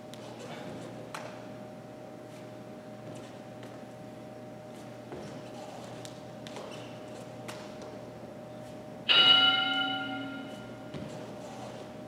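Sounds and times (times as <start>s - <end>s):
interval timer bell: 9.1s - 10.8s.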